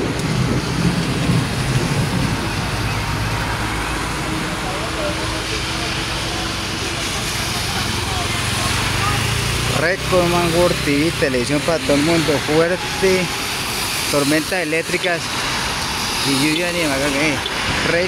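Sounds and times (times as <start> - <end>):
engine humming: 0.0 - 14.1
heavy rain falling: 0.0 - 18.0
tyres swishing on wet road: 0.0 - 18.0.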